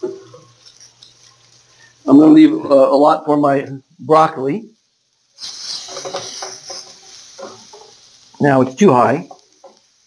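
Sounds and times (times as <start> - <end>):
wooden spatula stirring: 0.0 - 1.7, 5.5 - 8.4, 9.2 - 10.0
onions sizzling in a frying pan: 0.0 - 10.0.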